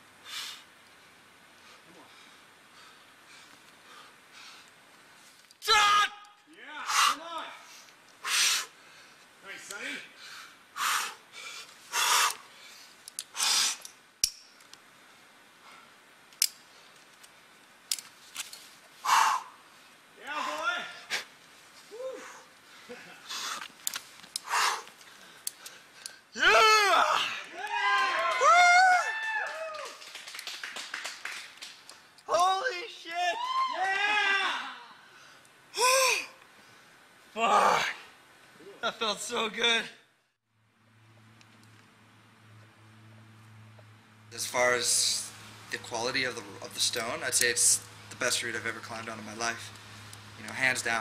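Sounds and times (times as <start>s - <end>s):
loud shouting: 5.6s - 7.5s, 26.4s - 30.0s, 32.3s - 35.0s.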